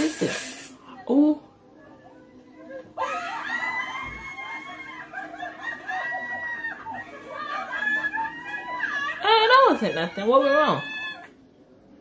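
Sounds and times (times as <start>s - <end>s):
woman screaming: 3.0s - 5.1s, 7.6s - 11.3s.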